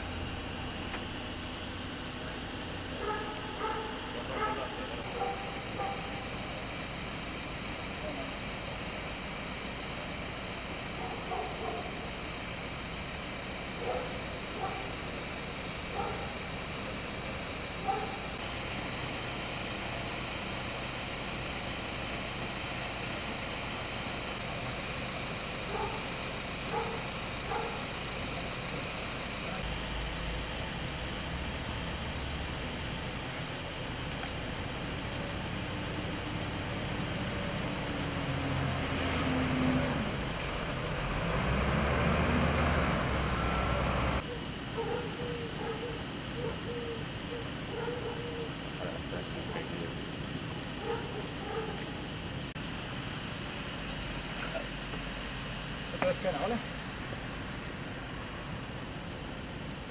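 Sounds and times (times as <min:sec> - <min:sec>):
outdoor background noise: 0:00.0 - 0:59.9
faint distant calls: 0:02.3 - 0:29.6, 0:43.4 - 0:52.1.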